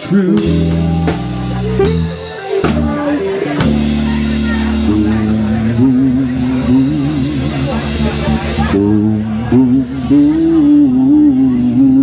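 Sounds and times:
blues band sustained chord: 0.0s - 12.0s.

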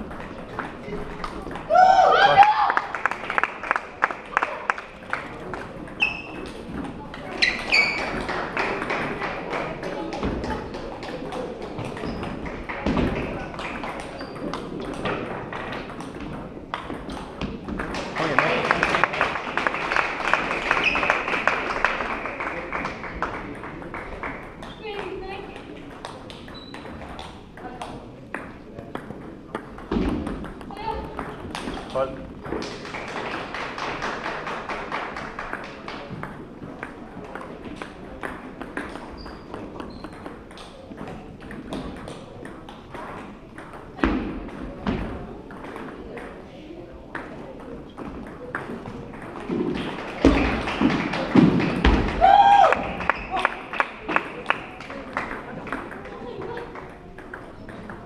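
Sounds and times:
table tennis balls clicking: 0.0s - 1.7s, 4.8s - 18.2s, 19.8s - 34.2s, 34.8s - 52.2s, 53.0s - 58.0s
people chattering: 0.0s - 58.0s.

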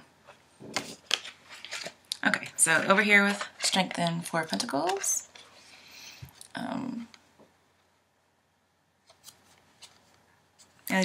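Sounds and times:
cards rustling and tapping: 0.6s - 5.5s.

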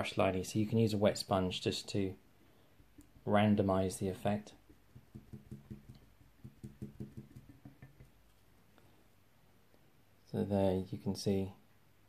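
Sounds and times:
sponge dabbing soft taps: 4.2s - 8.4s.

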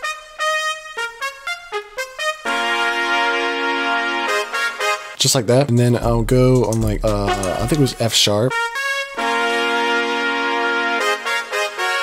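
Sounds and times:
short trumpet-like notes: 0.0s - 5.2s, 7.3s - 12.0s.

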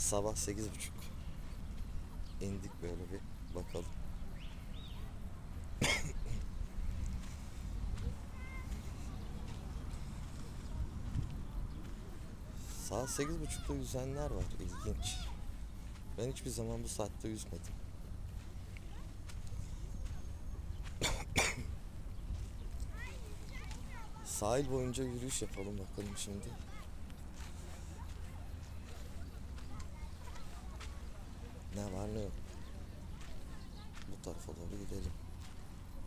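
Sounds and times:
steady low rumble: 0.0s - 12.8s, 13.9s - 33.8s
person coughing: 5.8s - 6.4s, 21.0s - 21.7s.

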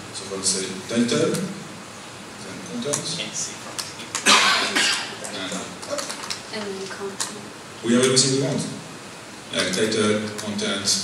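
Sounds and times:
man coughing into microphone: 4.2s - 5.2s.

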